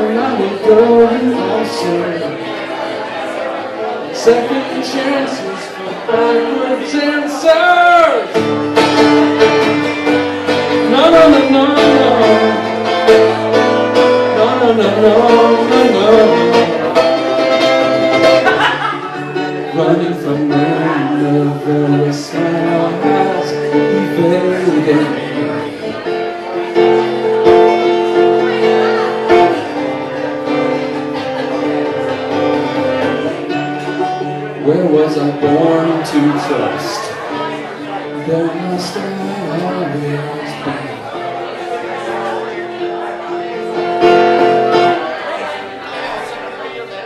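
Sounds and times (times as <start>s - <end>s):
man singing: 0.0s - 3.0s, 4.0s - 30.9s, 31.6s - 42.2s
acoustic guitar strumming: 0.0s - 47.0s.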